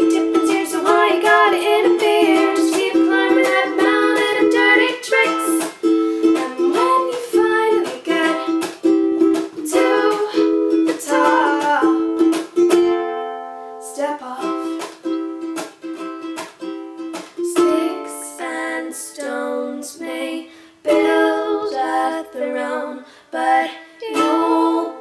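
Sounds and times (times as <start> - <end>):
ukulele strumming: 0.0 - 20.3, 20.9 - 25.0.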